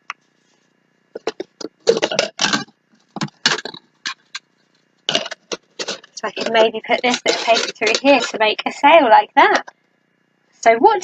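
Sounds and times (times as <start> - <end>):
plastic cup and paper rustling: 5.4 - 8.4.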